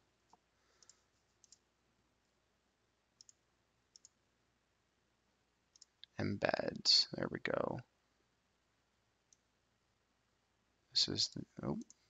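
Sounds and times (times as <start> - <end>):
computer mouse clicks: 0.3 - 1.7, 3.2 - 4.2, 5.7 - 6.8, 9.3 - 9.5.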